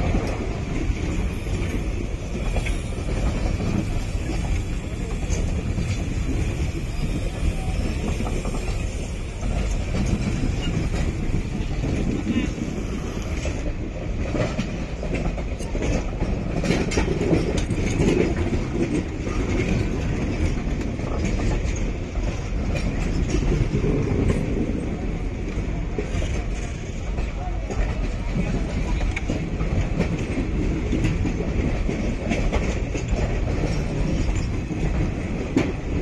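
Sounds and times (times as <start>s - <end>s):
train wheels rumbling on rails: 0.0s - 36.0s
wheels clicking over rail joints: 0.0s - 36.0s.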